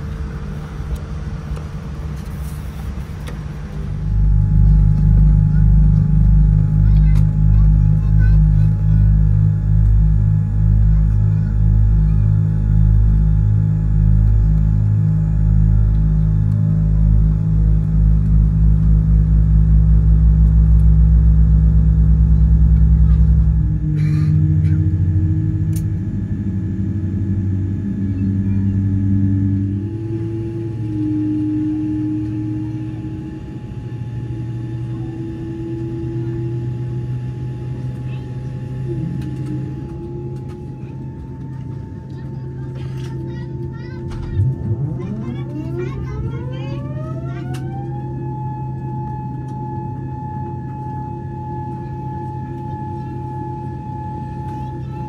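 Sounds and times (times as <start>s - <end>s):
airliner cabin engine rumble: 0.0s - 55.0s.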